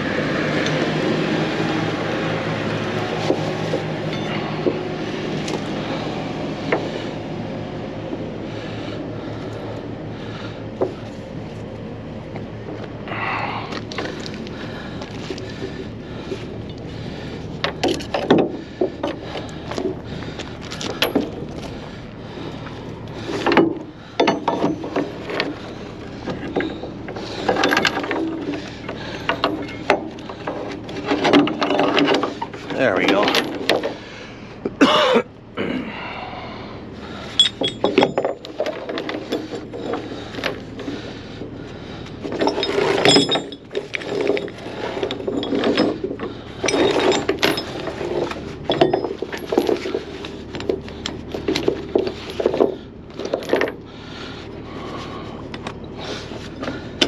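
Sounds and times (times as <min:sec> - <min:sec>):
chain links clanking: 0:03.7 - 0:04.7, 0:17.6 - 0:21.8, 0:22.4 - 0:34.0, 0:37.2 - 0:41.0, 0:42.2 - 0:54.2.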